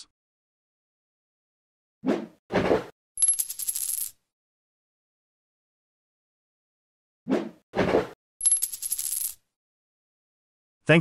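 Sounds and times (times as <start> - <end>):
coin spinning and settling: 3.2 - 4.2, 8.4 - 9.4
brief swish: 7.3 - 8.2.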